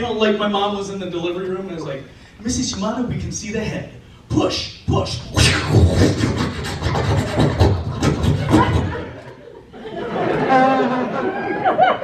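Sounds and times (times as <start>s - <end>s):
man making vocal sound effects: 4.4s - 7.5s.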